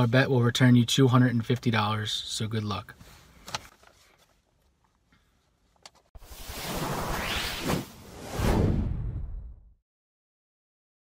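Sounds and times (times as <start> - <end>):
whoosh sound effect: 6.2 - 9.7.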